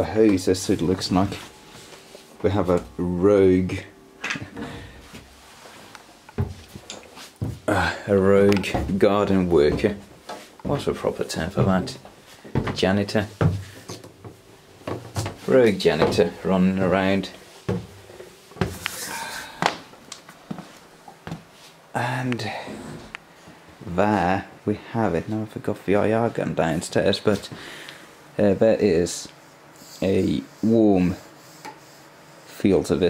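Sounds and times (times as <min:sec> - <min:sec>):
footfalls on wooden stairs: 0:06.4 - 0:07.8, 0:08.6 - 0:16.4, 0:17.7 - 0:18.0.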